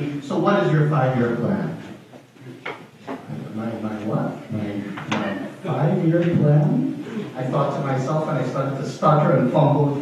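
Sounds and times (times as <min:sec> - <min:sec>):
man talking: 0:00.0 - 0:02.0, 0:03.2 - 0:10.0.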